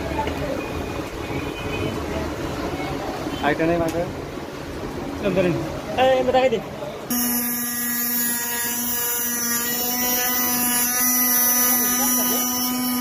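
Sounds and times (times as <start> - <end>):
disc grinding metal rods: 7.1 - 13.0
motor whine: 7.1 - 13.0.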